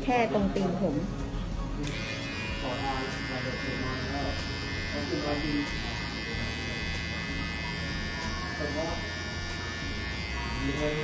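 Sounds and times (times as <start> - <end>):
hair trimmer buzzing: 1.8 - 11.0.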